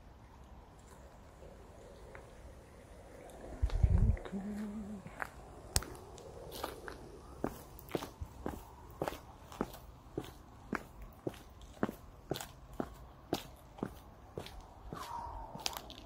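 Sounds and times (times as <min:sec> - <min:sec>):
footsteps walking: 0:04.5 - 0:16.0.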